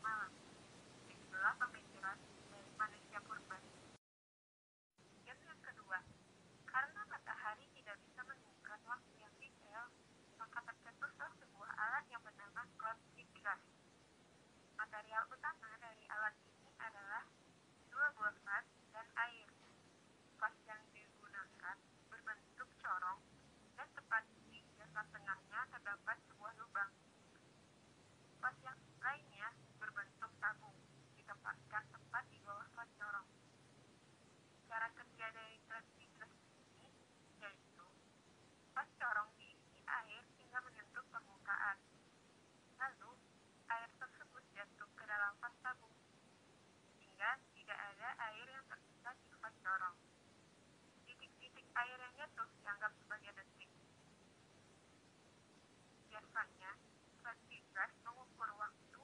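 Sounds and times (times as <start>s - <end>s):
woman narrating over telephone: 0.0s - 0.4s, 1.1s - 3.7s, 5.3s - 13.7s, 14.8s - 19.7s, 20.4s - 23.2s, 23.8s - 27.0s, 28.4s - 33.4s, 34.6s - 38.0s, 38.8s - 41.9s, 42.8s - 46.0s, 47.0s - 50.0s, 51.1s - 53.8s, 56.1s - 59.0s.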